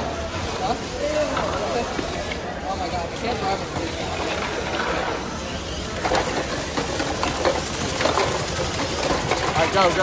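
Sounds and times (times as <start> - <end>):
steady background din: 0.0 - 10.0
plastic blocks knocking: 6.0 - 10.0.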